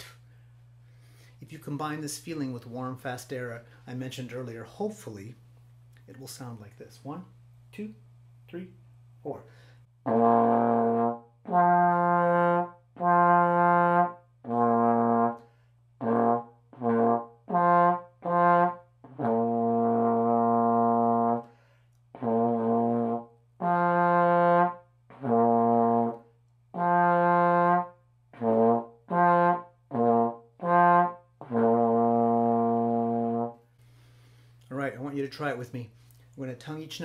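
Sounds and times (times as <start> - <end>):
trombone low notes: 10.0 - 15.4, 16.0 - 21.5, 22.1 - 33.6.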